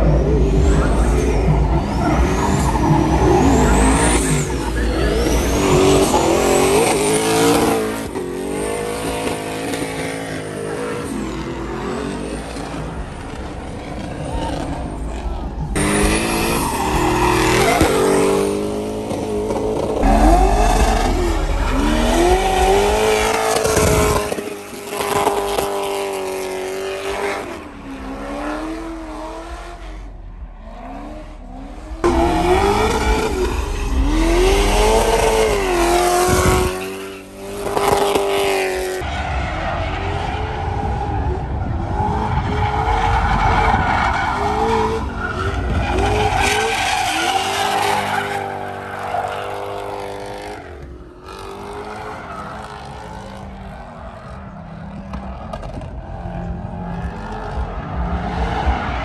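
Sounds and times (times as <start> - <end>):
car engines revving: 0.0 - 59.0
tyre squeal: 0.1 - 7.8.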